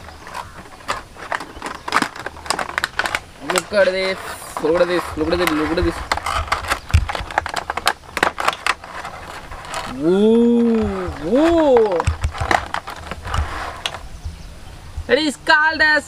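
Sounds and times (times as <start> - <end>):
plastic packaging tray crackling: 0.0 - 14.0.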